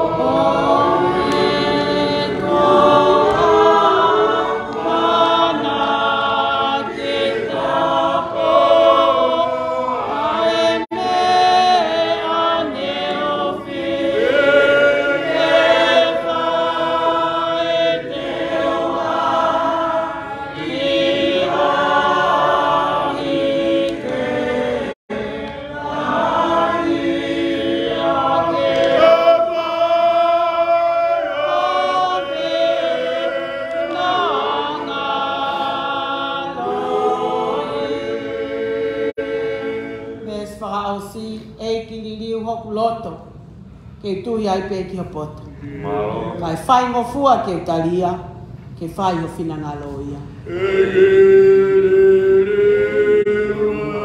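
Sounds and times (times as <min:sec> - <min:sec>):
choir singing a hymn: 0:00.0 - 0:42.1, 0:45.0 - 0:47.8, 0:49.8 - 0:54.0.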